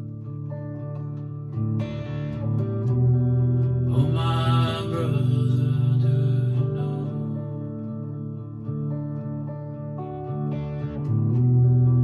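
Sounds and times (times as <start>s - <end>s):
strummed guitar chords: 0.0s - 12.0s
man singing a long note: 3.9s - 7.9s.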